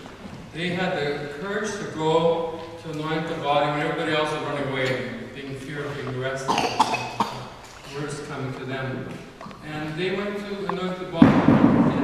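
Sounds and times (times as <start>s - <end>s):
person speaking: 0.5s - 11.3s
person coughing: 6.5s - 8.0s.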